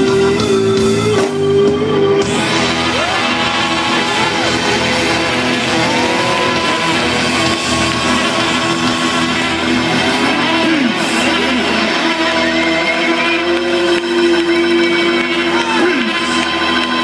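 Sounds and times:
live band playing amplified music: 0.0 - 17.0
sliding notes: 0.0 - 17.0.

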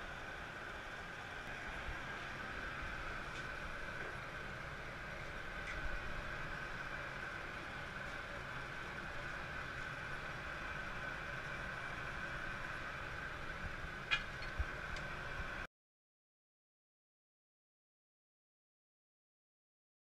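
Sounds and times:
constant high whine: 0.0 - 15.7
hum of blowers and burners: 0.0 - 15.7.

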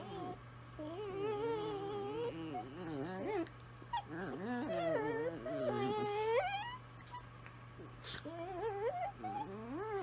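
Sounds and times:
dogs howling: 0.0 - 7.2, 8.3 - 10.0.

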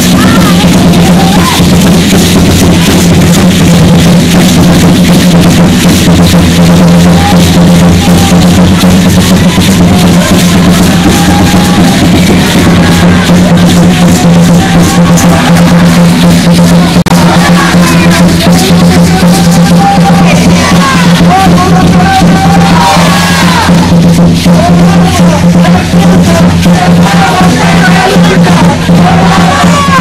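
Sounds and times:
loud steady drumming: 0.0 - 30.0.

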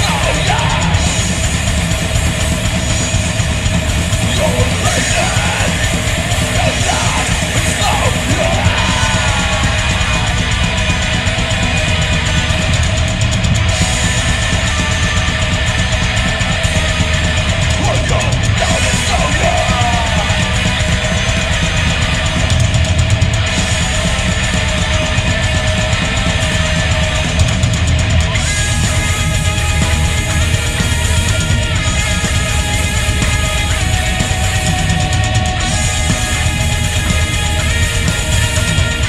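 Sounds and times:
bass guitar: 0.0 - 39.0
distorted electric guitars: 0.0 - 39.0
drum kit: 0.0 - 39.0.

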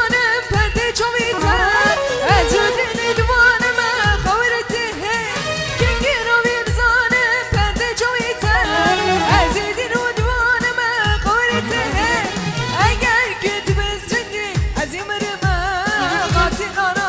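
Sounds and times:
electronic keyboard: 1.3 - 4.2
woman singing ornamented melody: 1.3 - 4.2.

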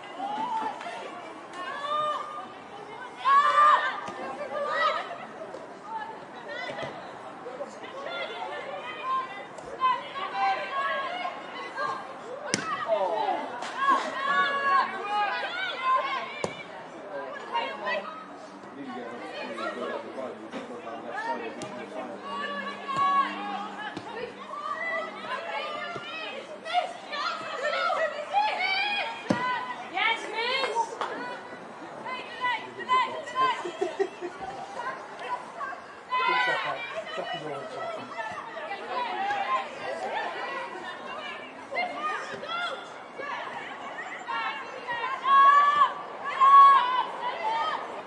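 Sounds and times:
people talking and calling out: 0.0 - 48.0.

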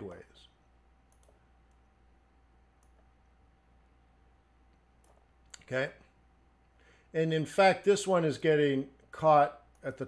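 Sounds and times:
low steady hum: 0.0 - 10.0
computer mouse clicks: 1.1 - 1.9, 2.7 - 3.1, 4.7 - 5.7.

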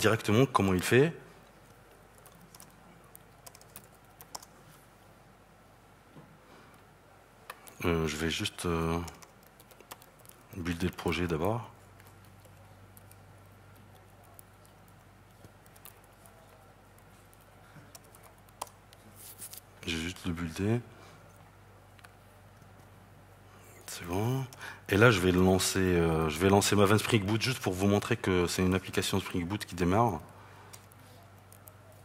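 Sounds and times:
laptop keyboard keystrokes: 2.1 - 4.5, 9.0 - 11.0, 12.0 - 18.8.

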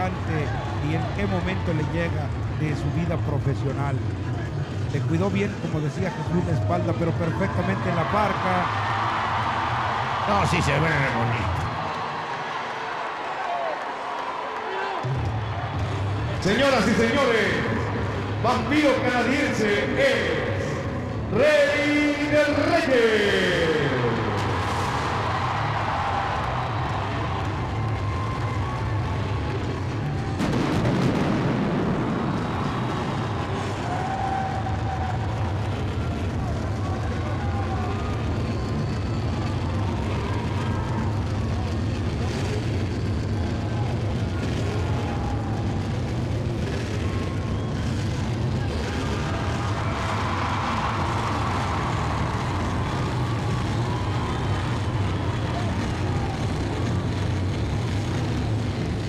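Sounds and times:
arena crowd din: 0.0 - 59.0
pyrotechnic blast: 23.4 - 59.0.

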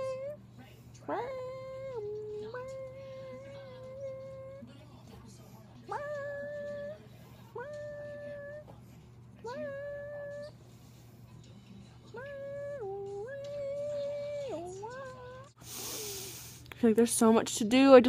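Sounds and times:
low steady hum: 0.0 - 18.0
woman singing wordless notes: 1.0 - 4.7, 5.9 - 7.0, 7.6 - 8.7, 9.4 - 10.6, 12.1 - 15.5.

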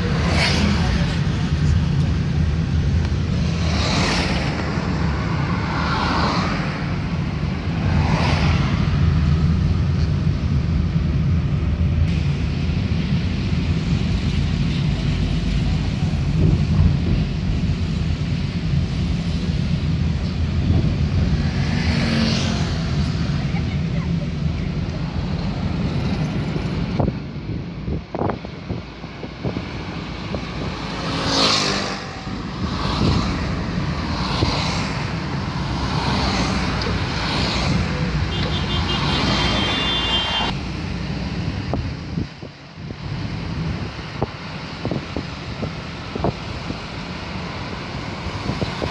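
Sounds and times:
car engine and road rumble: 0.0 - 48.9
tyre and road noise whooshes: 0.0 - 48.9.

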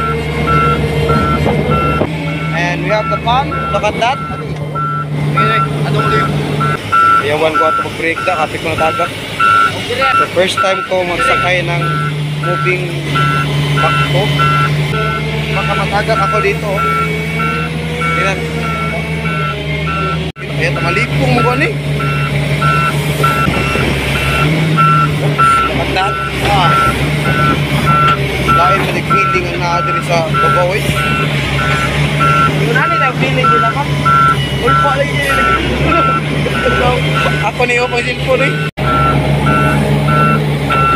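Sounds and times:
engine humming: 0.0 - 40.9
warning alarm beeping: 0.0 - 40.9.

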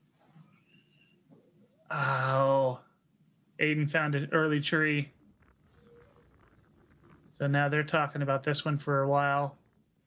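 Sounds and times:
faint low hum: 0.0 - 10.0
man's voice: 7.4 - 9.5.

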